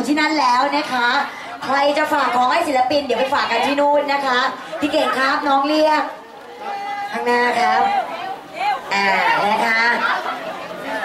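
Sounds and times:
woman talking: 0.0s - 10.2s
background chatter: 0.0s - 11.0s.

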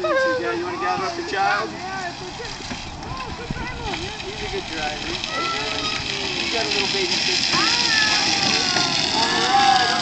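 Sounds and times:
electric toy car motor whine: 0.0s - 10.0s
voices in background: 0.0s - 10.0s.

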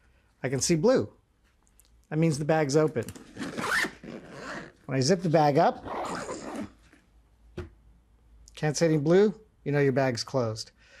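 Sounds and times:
backpack zipper zipping: 3.2s - 4.8s, 5.8s - 6.8s.

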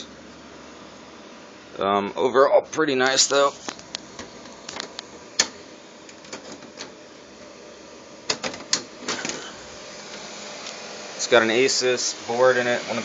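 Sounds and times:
computer fans whooshing: 0.0s - 13.0s.

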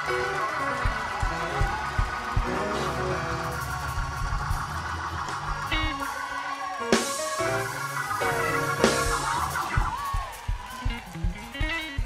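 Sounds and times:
drum beats: 0.0s - 12.0s
worship band playing: 0.0s - 12.0s.

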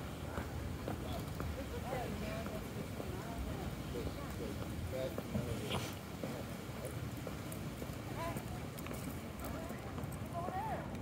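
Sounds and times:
faint voices: 0.0s - 11.0s
footsteps on brick paving: 0.0s - 11.0s.

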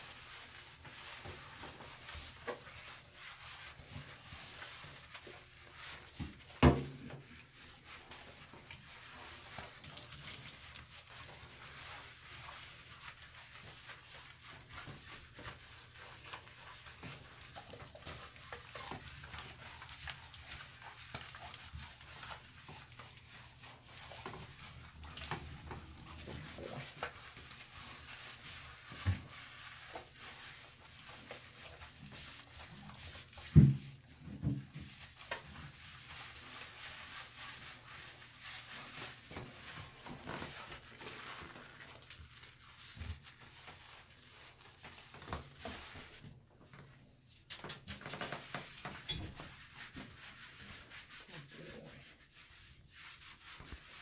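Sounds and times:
hands rubbing lather into fur: 0.0s - 54.0s.

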